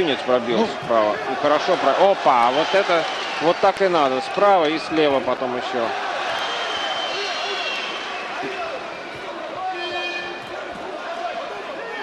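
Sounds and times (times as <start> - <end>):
crowd shouting and cheering: 0.0 - 12.0
high whistling tones: 6.4 - 8.2, 9.7 - 10.5.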